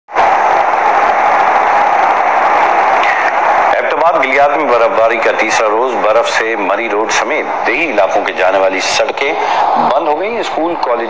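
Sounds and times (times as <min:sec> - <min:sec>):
loud rushing noise effect: 0:00.1 - 0:11.0
news anchor speaking: 0:03.0 - 0:11.0.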